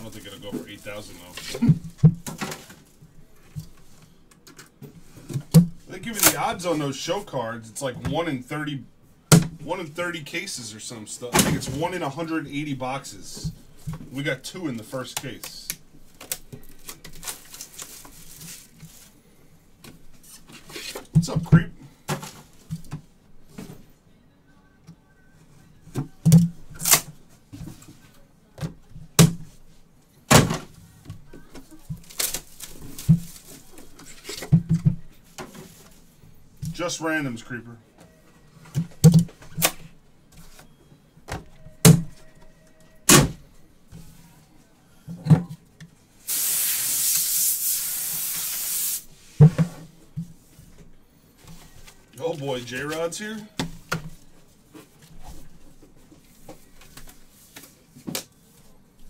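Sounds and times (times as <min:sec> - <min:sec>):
packaging hiss: 0:46.2 - 0:49.1.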